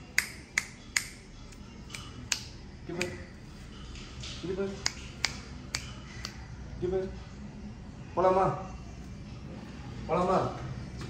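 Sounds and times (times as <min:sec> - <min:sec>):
sharp finger snapping clicks: 0:00.1 - 0:03.2, 0:04.8 - 0:06.5.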